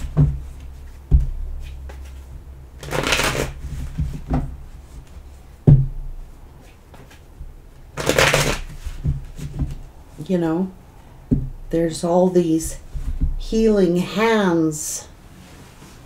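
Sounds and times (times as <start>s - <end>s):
cards being shuffled: 1.6s - 4.4s, 8.0s - 9.8s.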